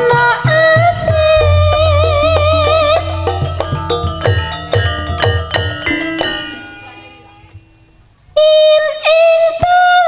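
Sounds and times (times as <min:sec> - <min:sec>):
struck bronze tone ringing: 0:01.4 - 0:07.1.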